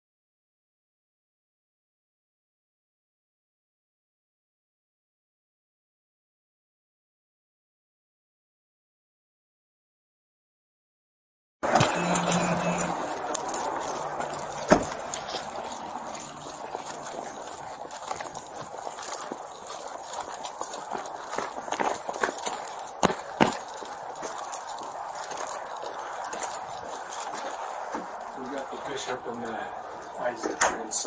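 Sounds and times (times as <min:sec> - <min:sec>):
clothing and gear rustling: 0:11.6 - 0:30.4
footsteps on snow and pavement: 0:11.6 - 0:30.6.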